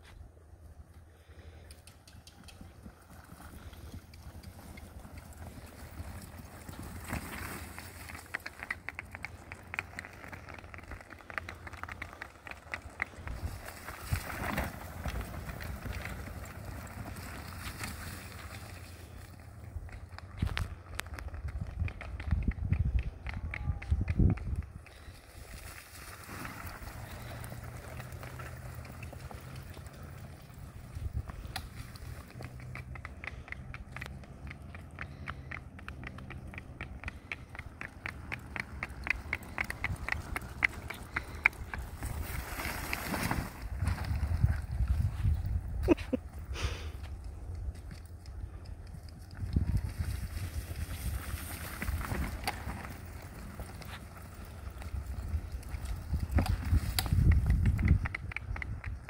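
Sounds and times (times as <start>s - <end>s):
hooves clip-clopping on asphalt: 0.0s - 59.0s
cart wheels rolling: 2.3s - 59.0s.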